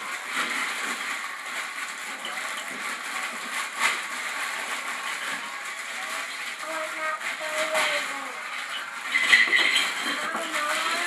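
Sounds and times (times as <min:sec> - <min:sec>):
wrapping paper rustling: 0:00.0 - 0:11.0.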